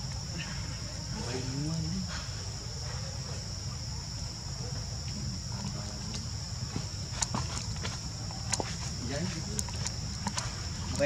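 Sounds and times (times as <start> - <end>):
insects droning: 0.0 - 11.0.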